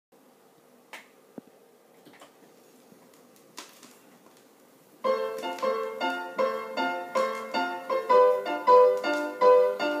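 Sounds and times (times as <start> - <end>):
vinyl record hiss and hum: 0.2 - 10.0
record click: 7.2 - 7.6.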